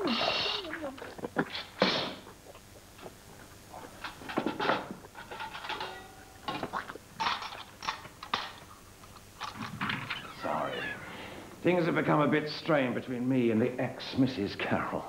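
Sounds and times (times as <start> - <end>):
brief wavering vocal sound: 10.2 - 11.4.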